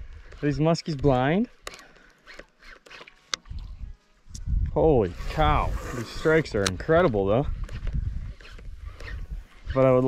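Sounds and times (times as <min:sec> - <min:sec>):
fishing reel clicking: 0:07.6 - 0:10.0.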